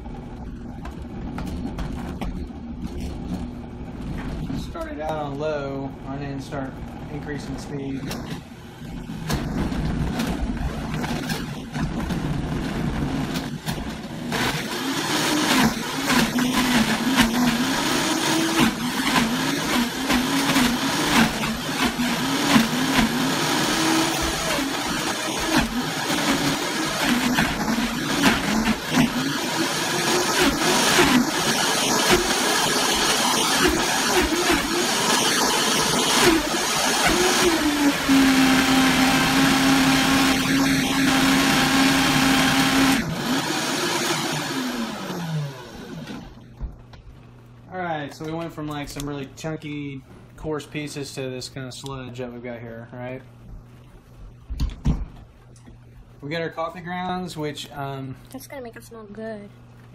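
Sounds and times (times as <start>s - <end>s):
blender motor running: 8.6s - 46.5s
blender winding down: 8.9s - 46.4s.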